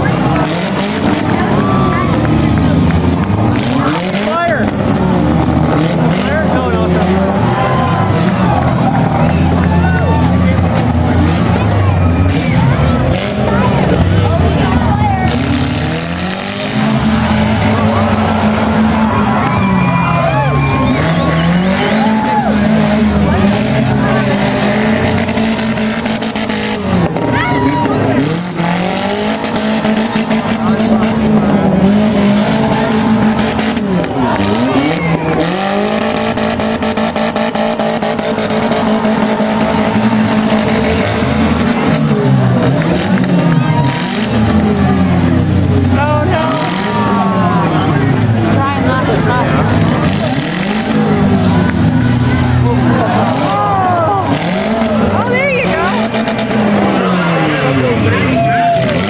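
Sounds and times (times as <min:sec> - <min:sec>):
car engines revving: 0:00.0 - 0:59.0
cars crashing: 0:00.0 - 0:59.0.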